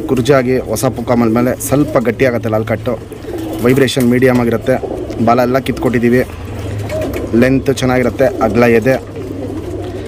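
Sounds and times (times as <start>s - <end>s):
man talking: 0.0s - 6.4s, 7.3s - 9.1s
pigeons cooing: 0.0s - 10.0s.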